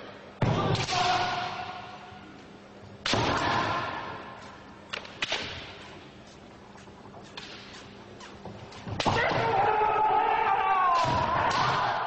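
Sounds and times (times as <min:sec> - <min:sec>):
bamboo swords striking: 0:07.4 - 0:09.6, 0:10.9 - 0:12.0.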